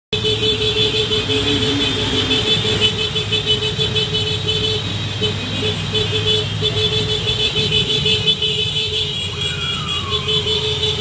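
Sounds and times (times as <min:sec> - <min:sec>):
horns sounding: 0:00.1 - 0:11.0
motorcycle engines running: 0:00.2 - 0:11.0.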